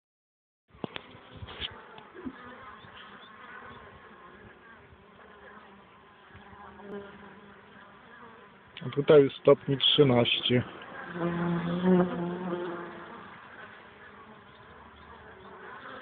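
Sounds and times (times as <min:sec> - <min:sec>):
honeybees buzzing: 0:00.7 - 0:16.0.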